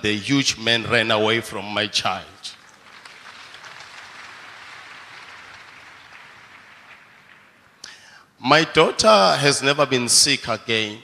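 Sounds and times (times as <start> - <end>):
congregation applauding: 2.5 - 7.9.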